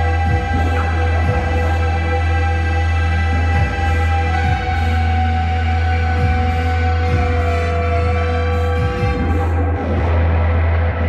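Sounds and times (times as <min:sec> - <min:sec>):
deep bass drone: 0:00.0 - 0:11.0
layered sustained electronic tones: 0:00.0 - 0:11.0.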